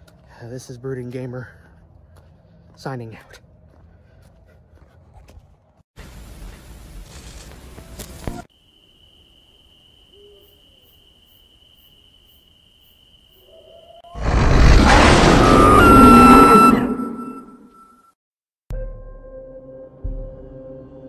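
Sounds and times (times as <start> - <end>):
loud harsh burst of noise: 14.2 - 17.4.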